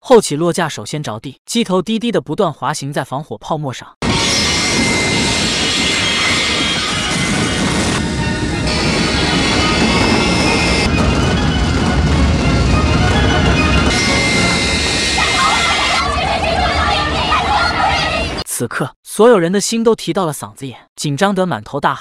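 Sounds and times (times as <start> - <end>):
dramatic music: 4.0 - 18.4
jet engines and sliding roar: 4.0 - 18.4.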